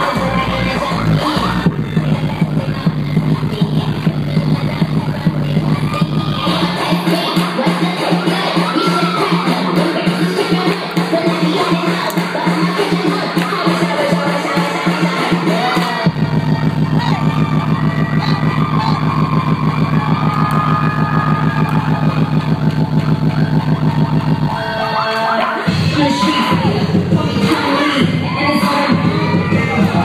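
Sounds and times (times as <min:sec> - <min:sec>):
deep bass line: 0:00.0 - 0:25.1, 0:25.7 - 0:30.0
hip-hop dance music: 0:00.0 - 0:30.0.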